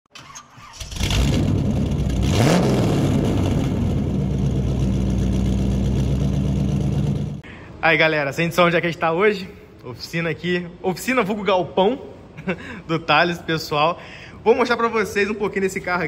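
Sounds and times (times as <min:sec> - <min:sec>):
engine starting and idling: 0:00.1 - 0:07.4.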